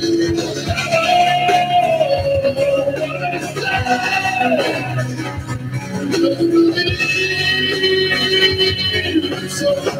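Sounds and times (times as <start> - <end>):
live rock band playing: 0.0 - 9.9.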